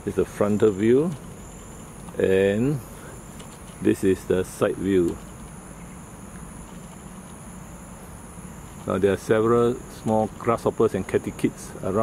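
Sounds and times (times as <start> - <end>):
insect chorus: 0.0 - 12.0
low background hum: 0.0 - 12.0.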